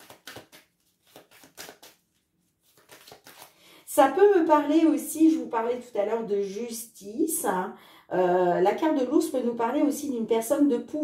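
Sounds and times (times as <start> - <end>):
cards being shuffled: 0.0 - 3.6.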